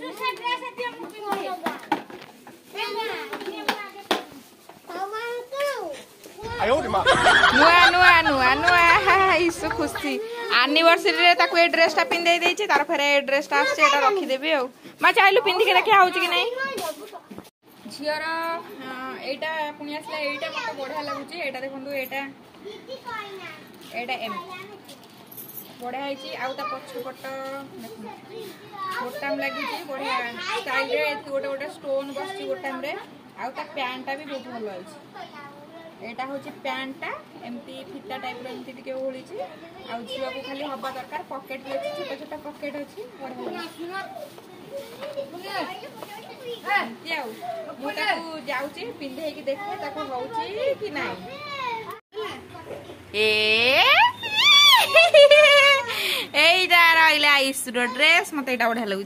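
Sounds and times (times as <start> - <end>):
children talking and calling out: 0.0 - 12.2, 13.5 - 17.5, 19.9 - 21.6, 22.4 - 25.1, 26.0 - 56.4, 57.7 - 58.3
woman's voice: 6.5 - 16.5, 53.1 - 59.0
child's high wavering voice: 54.0 - 55.0.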